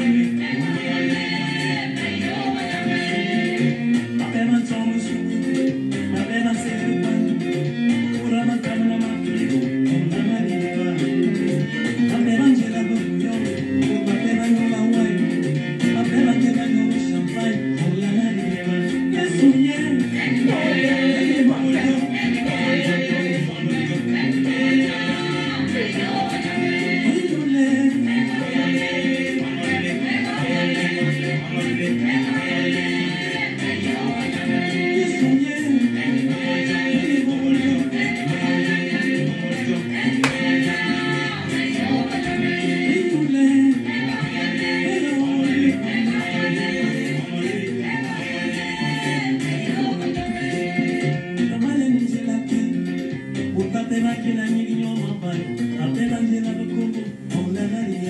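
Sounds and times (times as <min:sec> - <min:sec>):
gospel group vocals: 0:00.0 - 0:58.0.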